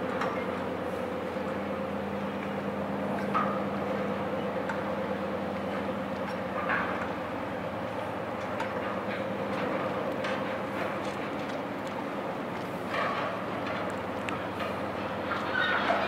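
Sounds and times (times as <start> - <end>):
diesel machinery drone: 0.0 - 16.0.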